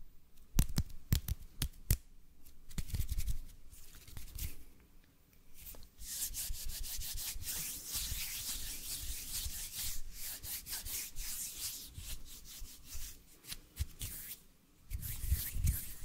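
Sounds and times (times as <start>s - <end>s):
hands rubbing together: 5.6s - 16.0s.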